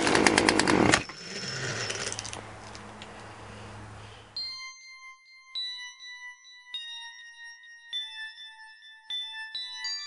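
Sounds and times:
bell-like chime music: 1.0s - 2.4s, 4.4s - 10.0s.

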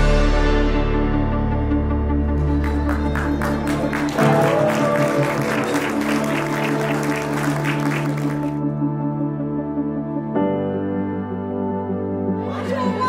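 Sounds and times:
music playing: 0.0s - 13.0s
crowd applauding: 2.4s - 8.6s.

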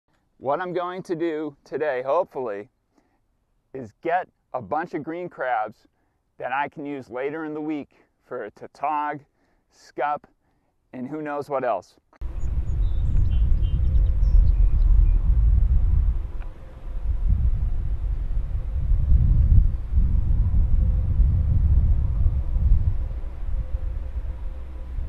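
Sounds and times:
wind buffeting microphone: 12.2s - 25.0s.

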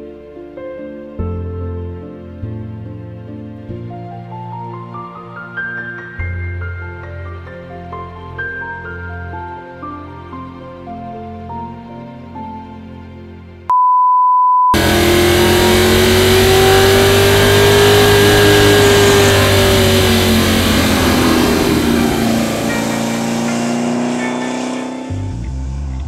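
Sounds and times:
car engine driving past: 14.8s - 26.0s.

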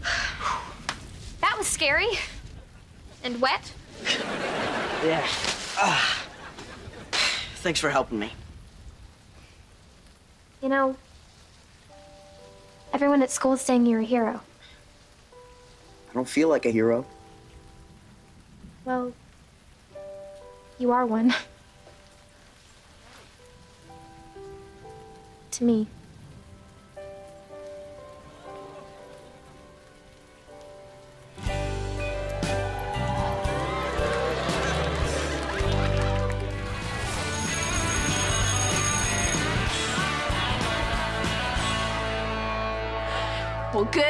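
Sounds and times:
faint hiss: 0.0s - 35.8s
soft music of sustained chords: 11.8s - 18.7s, 19.9s - 44.0s
audience whooping and cheering: 32.2s - 39.6s.

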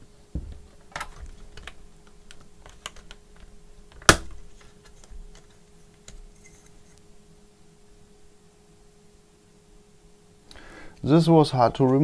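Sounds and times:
plastic clips clicking and creaking: 0.9s - 4.2s
loud plastic snap: 4.0s - 4.4s.

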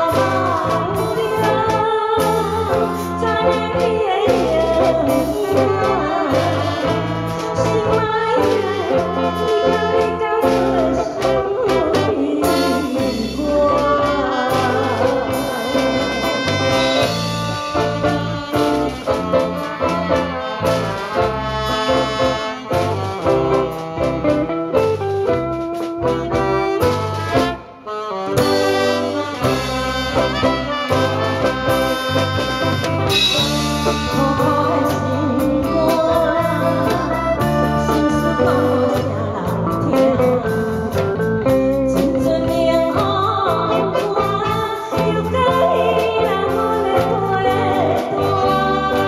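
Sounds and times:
person singing: 0.0s - 27.5s, 33.1s - 49.0s
live band with brass: 0.0s - 49.0s.

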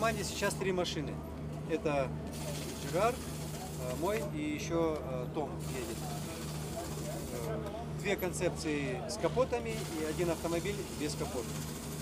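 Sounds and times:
faint voices talking: 0.0s - 11.6s.

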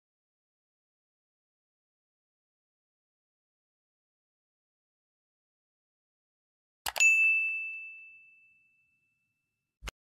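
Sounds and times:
bright bell-like ding: 6.9s - 9.3s.

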